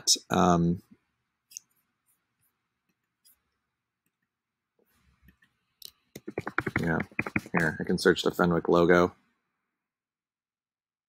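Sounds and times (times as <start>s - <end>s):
man talking: 0.0s - 0.9s, 6.6s - 9.1s
faint taps: 6.2s - 7.7s
keyboard keystrokes: 6.2s - 7.8s.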